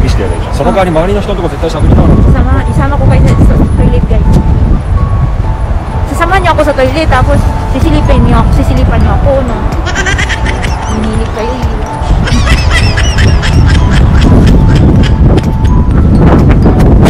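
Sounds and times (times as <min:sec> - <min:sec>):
faint background music: 0:00.0 - 0:17.0
wind buffeting microphone: 0:00.0 - 0:17.0
woman's voice wavering: 0:06.2 - 0:12.4.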